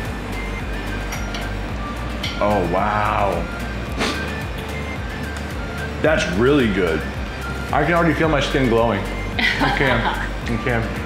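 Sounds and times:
background music with heavy bass: 0.0s - 11.0s.

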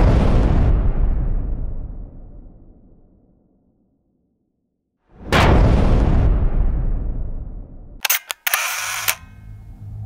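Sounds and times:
camera shutter clicks: 8.0s - 9.4s.

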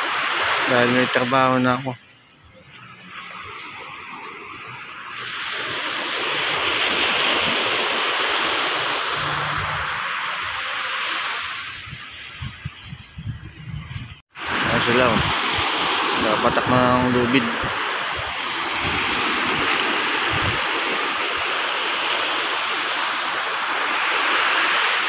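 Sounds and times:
sea waves washing onto beach: 0.0s - 13.0s, 14.2s - 25.0s.

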